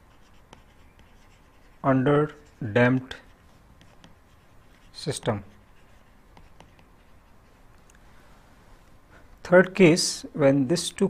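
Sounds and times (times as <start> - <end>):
pen scratching on paper: 0.0 - 7.6
man speaking: 1.8 - 3.3, 4.9 - 5.6, 9.4 - 11.0.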